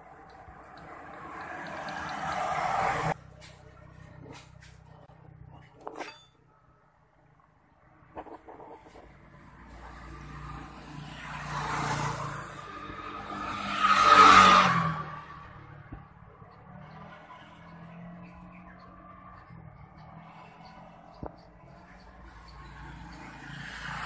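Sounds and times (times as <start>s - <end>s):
motor vehicle passing: 0.0s - 5.7s, 7.3s - 24.0s.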